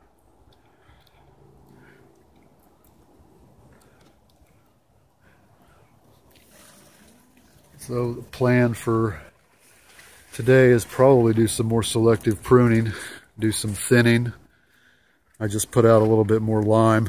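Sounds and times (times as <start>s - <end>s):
faint clicks: 0.2s - 6.5s
man speaking: 7.8s - 9.4s, 10.3s - 14.4s, 15.4s - 17.0s.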